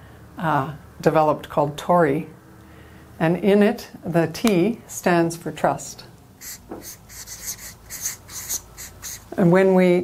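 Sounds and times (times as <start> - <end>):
marker scratching on paper: 6.4 - 9.3.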